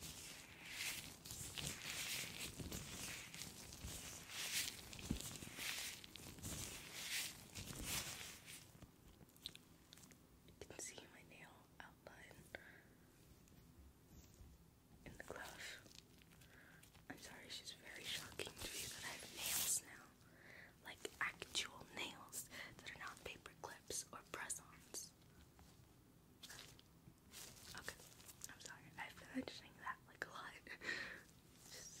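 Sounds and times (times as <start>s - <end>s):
latex gloves rubbing and crinkling: 0.0s - 10.2s, 15.5s - 20.1s, 24.5s - 29.0s.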